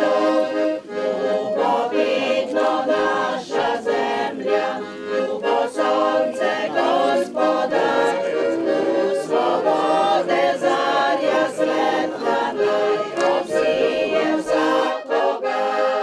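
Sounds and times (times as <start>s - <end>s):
choir singing: 0.0s - 16.0s.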